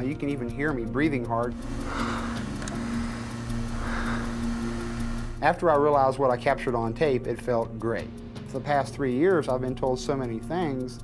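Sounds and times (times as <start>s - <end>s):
low drone: 1.5s - 5.4s
man breathing hard: 1.6s - 5.0s.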